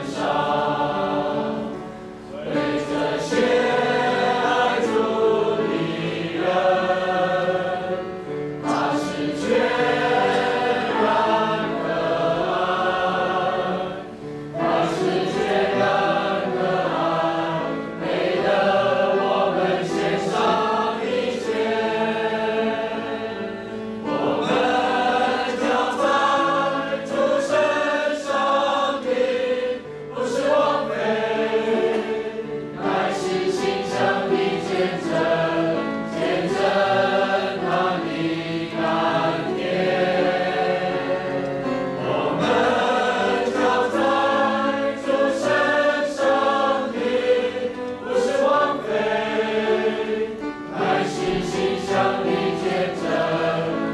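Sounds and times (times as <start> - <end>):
congregation singing a hymn: 0.0 - 53.9.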